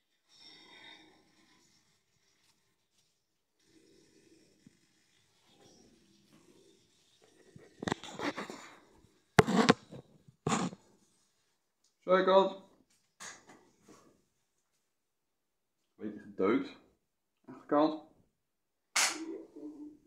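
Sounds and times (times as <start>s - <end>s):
knocks and scraping: 7.7s - 8.7s, 9.4s - 10.8s
phone handling rubbing and rustling: 7.8s - 8.6s, 9.4s - 10.8s.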